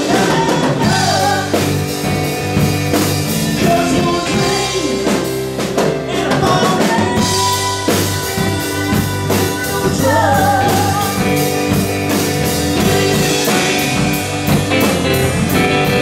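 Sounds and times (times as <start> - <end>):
woman singing: 0.0 - 2.0, 3.5 - 5.3, 6.0 - 11.8
rock band playing: 0.0 - 16.0.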